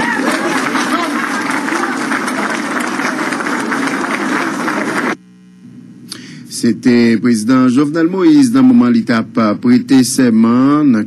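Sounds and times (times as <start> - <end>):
crowd applauding: 0.0 - 5.2.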